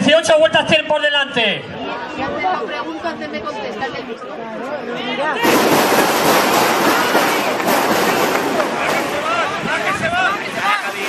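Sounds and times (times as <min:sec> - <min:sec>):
voices chattering: 0:01.4 - 0:11.0
loud even rushing noise: 0:05.4 - 0:11.0.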